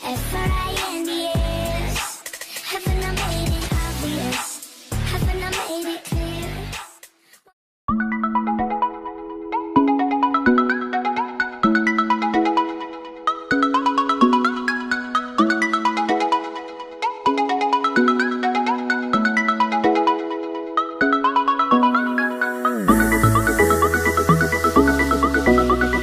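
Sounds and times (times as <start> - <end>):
chiming melody over bass line: 7.9 - 15.4, 21.0 - 26.0.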